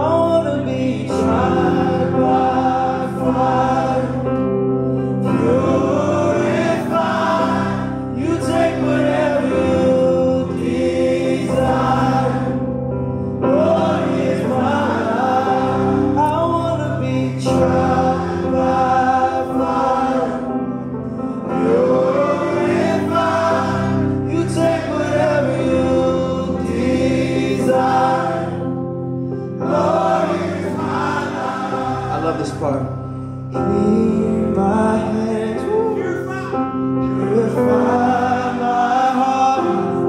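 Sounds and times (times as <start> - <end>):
sustained keyboard chords: 0.0 - 40.0
group singing gospel: 0.9 - 4.4, 5.2 - 20.8, 21.4 - 32.6, 37.1 - 40.0.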